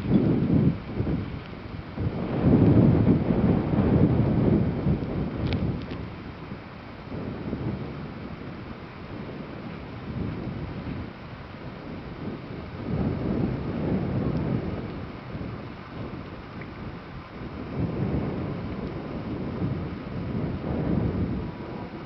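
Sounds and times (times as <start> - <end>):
wind buffeting microphone: 0.0 - 22.0
faint light clicks: 5.0 - 6.0.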